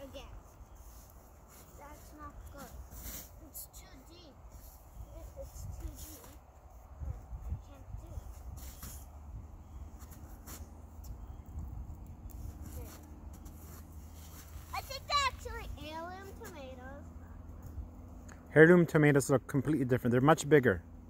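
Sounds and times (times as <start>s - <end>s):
low steady rumble: 3.9s - 21.0s.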